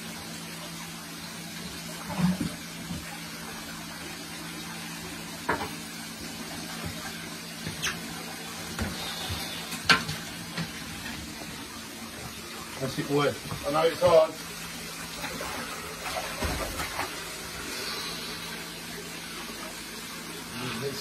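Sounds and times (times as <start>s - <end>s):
water moving in a fish tank: 0.0s - 21.0s.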